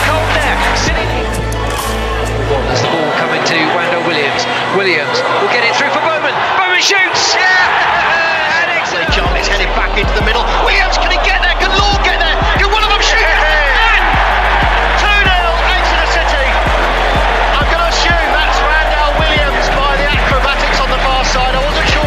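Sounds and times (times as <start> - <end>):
background music: 0.0 - 22.0
voices: 0.0 - 22.0.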